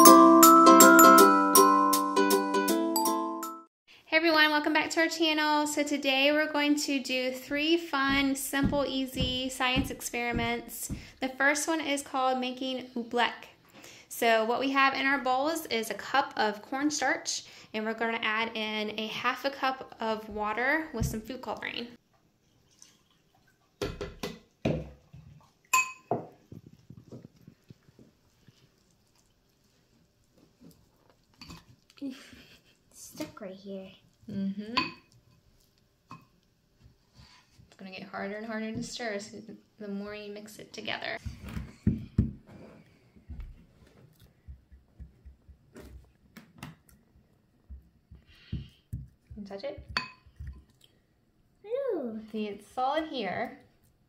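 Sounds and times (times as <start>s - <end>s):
spoon stirring thick mix: 7.1s - 11.3s, 46.8s - 50.9s
spoon clinking against glass: 25.8s - 26.2s.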